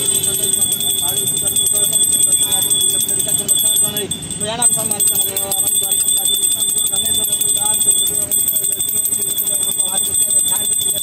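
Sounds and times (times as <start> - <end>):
hand bell ringing: 0.0 - 11.0.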